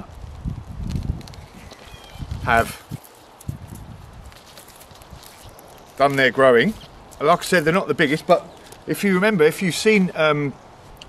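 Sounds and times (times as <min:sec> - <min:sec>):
leaves rustling: 0:00.0 - 0:11.0.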